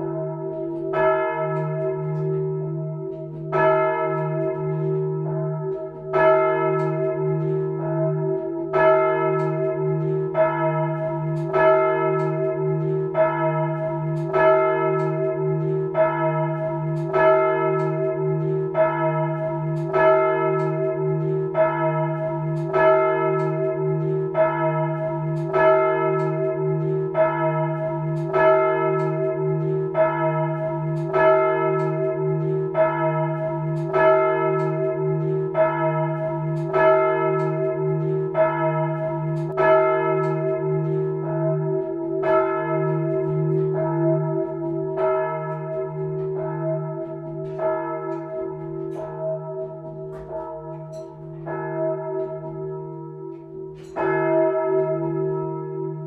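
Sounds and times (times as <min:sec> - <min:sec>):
church bell ringing: 0:00.0 - 0:56.0.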